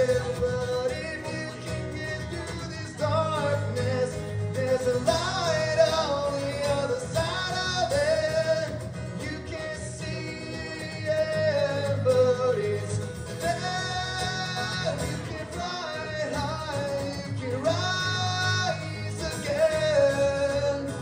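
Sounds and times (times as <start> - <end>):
man singing: 0.0 - 21.0
strummed acoustic guitar: 0.0 - 21.0.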